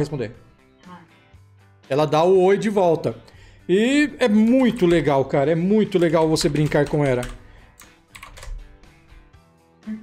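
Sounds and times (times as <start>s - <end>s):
quiet background music: 0.0s - 10.0s
keyboard keystrokes: 6.0s - 8.6s.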